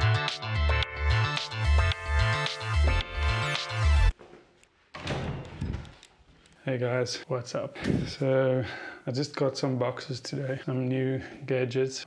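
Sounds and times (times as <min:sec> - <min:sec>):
background music: 0:00.0 - 0:04.2
door being handled: 0:04.9 - 0:06.0.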